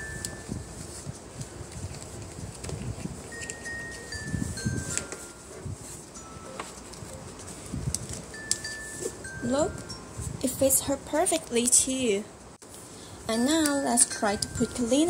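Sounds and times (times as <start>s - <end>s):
hands adjusting plastic straps: 0.2s - 5.4s
chime tones: 3.3s - 7.7s, 8.3s - 10.3s, 13.3s - 15.0s.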